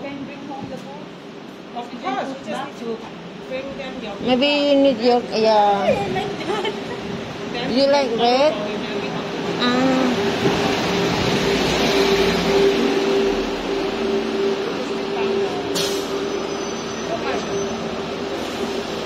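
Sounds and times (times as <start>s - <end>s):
bus engine running: 0.0s - 19.0s
street traffic: 0.0s - 19.0s
brief sharp hiss: 15.7s - 16.3s.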